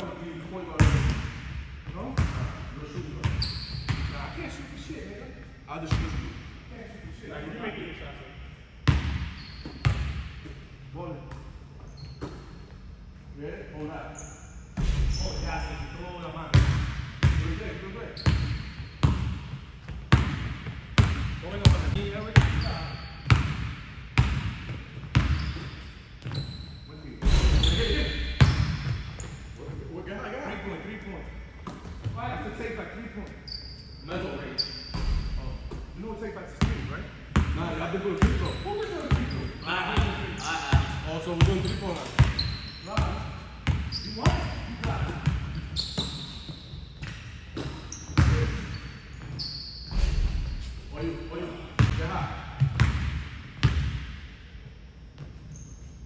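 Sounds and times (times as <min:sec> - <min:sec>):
sneaker squeaks: 0:01.9 - 0:04.6, 0:08.9 - 0:10.6, 0:11.3 - 0:13.1, 0:13.8 - 0:16.0, 0:17.3 - 0:20.0, 0:21.0 - 0:23.6, 0:24.4 - 0:29.9, 0:31.5 - 0:36.0, 0:38.0 - 0:51.9, 0:55.1 - 0:56.0.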